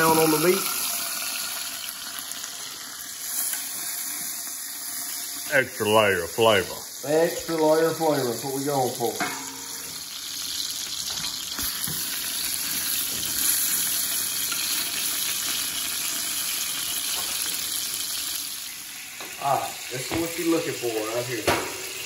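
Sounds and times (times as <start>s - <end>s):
meat sizzling in hot oil: 0.0s - 22.0s.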